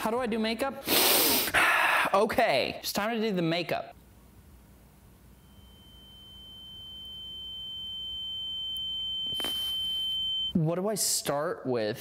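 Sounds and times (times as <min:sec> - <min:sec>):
high-pitched electronic tone: 0:05.4 - 0:10.5.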